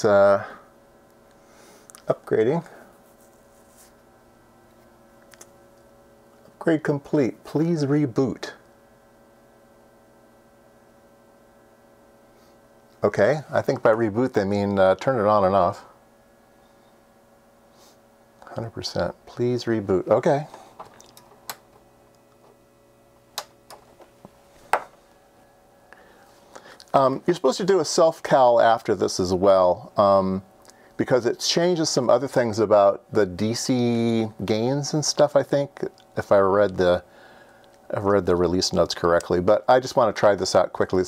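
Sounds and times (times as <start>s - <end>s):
faint electronics hum: 0.0s - 41.0s.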